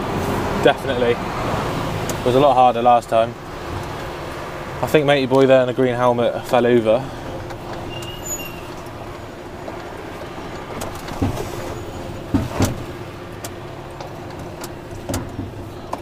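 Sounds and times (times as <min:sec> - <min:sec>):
diesel truck engine running: 0:00.0 - 0:16.0
truck knocks and rattles: 0:02.0 - 0:16.0.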